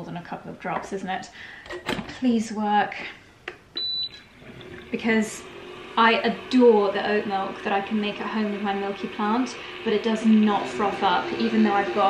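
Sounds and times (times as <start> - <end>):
milk frother beep: 3.8 - 4.3, 5.0 - 12.0.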